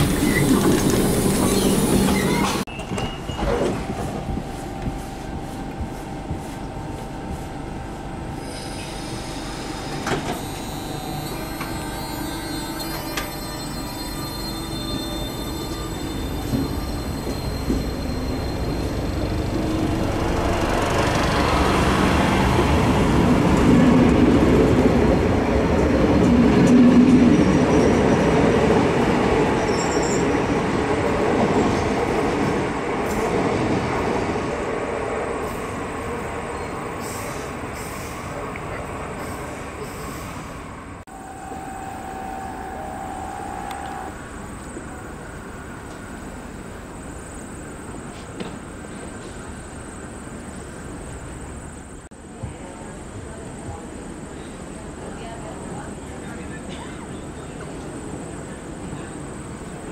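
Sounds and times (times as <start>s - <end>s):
high thin wheel squeal: 10.3s - 19.5s.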